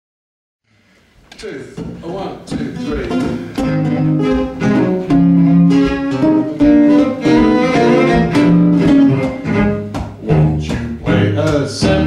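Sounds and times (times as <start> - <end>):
acoustic guitar chords: 1.8 - 12.0
bowed cello notes: 2.8 - 12.0.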